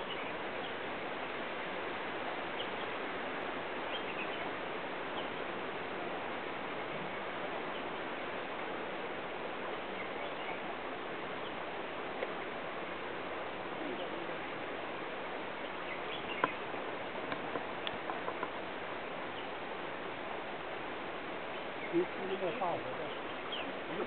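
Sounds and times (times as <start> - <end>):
steady outdoor hiss: 0.0 - 24.0
faint bird chirps: 9.7 - 11.6, 15.5 - 18.6, 21.4 - 24.0.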